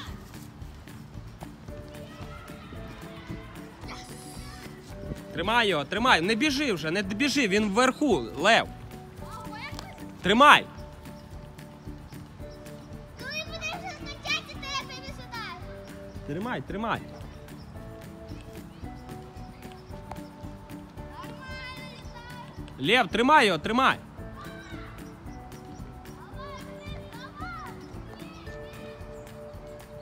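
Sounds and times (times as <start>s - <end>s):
background music: 0.0s - 30.0s
child calling out: 3.8s - 4.8s.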